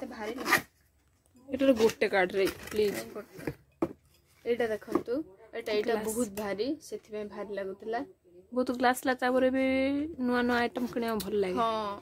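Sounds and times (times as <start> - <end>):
woman talking: 1.4 - 3.5, 4.5 - 12.0.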